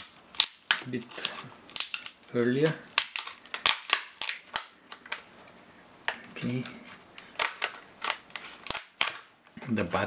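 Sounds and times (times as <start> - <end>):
plastic case cracking and snapping: 0.0 - 2.2, 2.8 - 5.3, 7.2 - 9.3.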